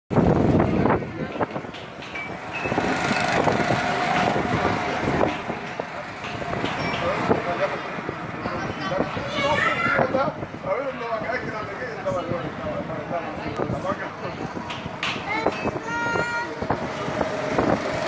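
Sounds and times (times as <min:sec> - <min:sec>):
go-karts running: 0:00.1 - 0:18.0
people talking: 0:04.4 - 0:17.0.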